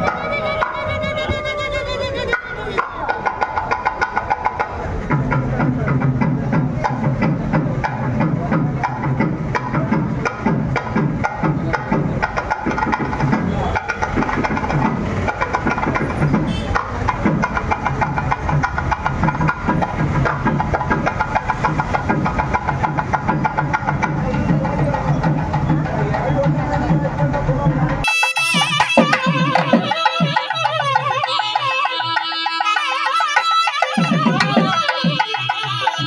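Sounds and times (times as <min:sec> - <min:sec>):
crowd talking: 0:00.0 - 0:36.0
fast continuous drumming: 0:00.0 - 0:36.0
festival music: 0:00.0 - 0:36.0.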